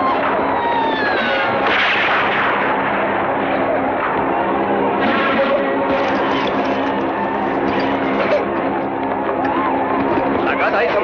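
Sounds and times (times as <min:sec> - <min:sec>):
wailing cry: 0:00.0 - 0:01.6
rifle shot: 0:01.6 - 0:03.1.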